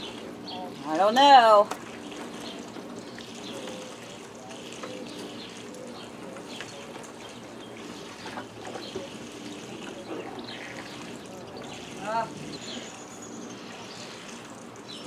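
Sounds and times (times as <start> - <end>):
water trickling and lapping: 0.0 - 15.0
faint indistinct voices: 2.3 - 14.3.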